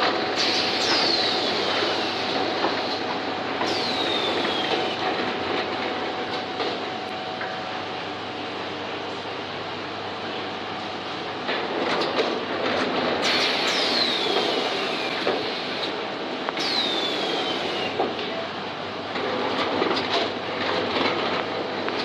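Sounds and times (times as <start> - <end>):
air hiss with falling whistle: 16.6 - 18.0.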